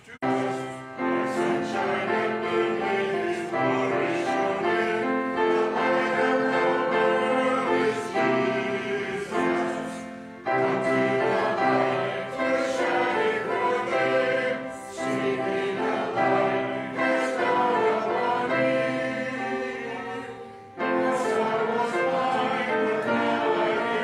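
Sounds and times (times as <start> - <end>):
congregation singing a hymn: 0.0 - 24.0
instruments playing along: 0.2 - 24.0.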